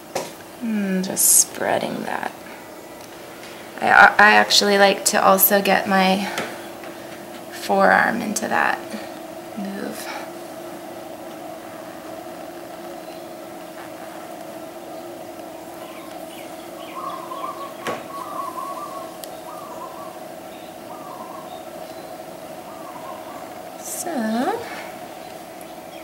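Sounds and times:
steady low hum: 0.0s - 26.0s
birds chirping: 0.5s - 26.0s.

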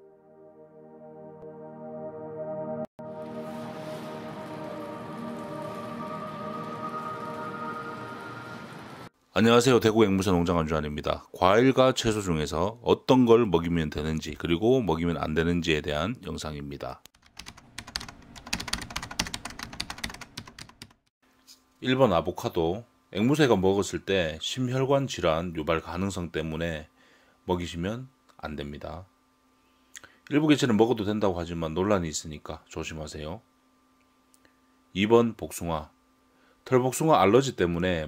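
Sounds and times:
slow ambient music: 0.0s - 9.1s
rain-like hiss: 3.2s - 9.1s
computer keyboard typing: 17.2s - 21.1s.

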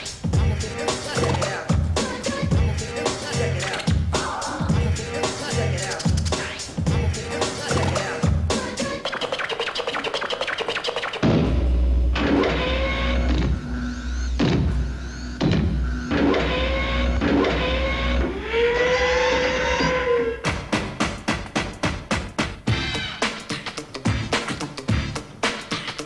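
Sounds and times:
rapid sharp beats: 0.0s - 13.7s, 20.4s - 26.0s
heavy bass with gliding tones: 11.2s - 20.9s.

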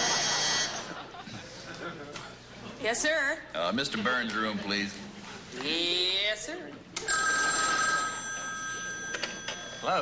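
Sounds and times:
telephone ringing: 0.0s - 0.9s, 7.0s - 10.0s.

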